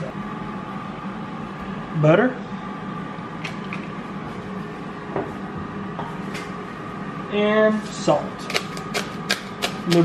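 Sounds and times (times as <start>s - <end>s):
kitchen appliance hum and hiss: 0.0s - 10.0s.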